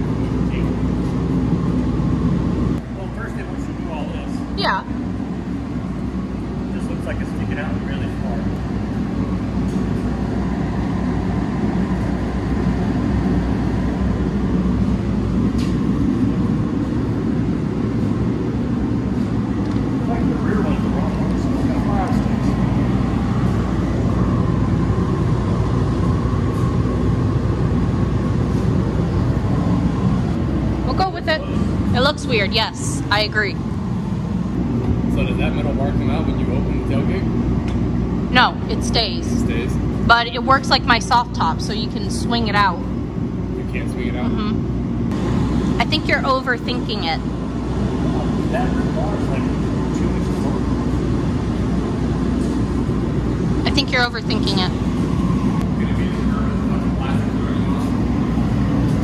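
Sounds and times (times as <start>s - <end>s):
low machine hum: 0.0s - 59.0s.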